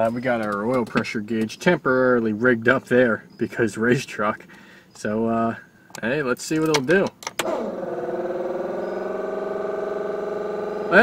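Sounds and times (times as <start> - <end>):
electric pump whining: 7.4 - 11.0.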